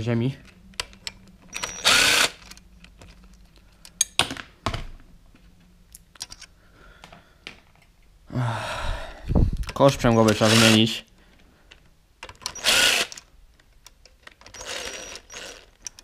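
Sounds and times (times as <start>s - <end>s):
pneumatic wrench bursts: 1.6s - 2.4s, 10.2s - 10.8s, 12.5s - 13.2s, 14.5s - 15.7s.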